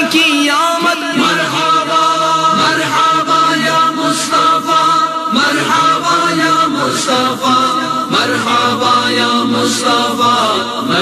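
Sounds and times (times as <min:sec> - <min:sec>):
voices chanting: 0:01.2 - 0:11.0.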